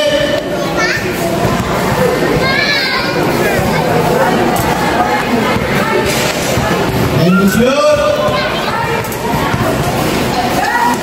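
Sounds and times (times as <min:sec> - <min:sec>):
young spectators chattering: 0:00.0 - 0:11.0.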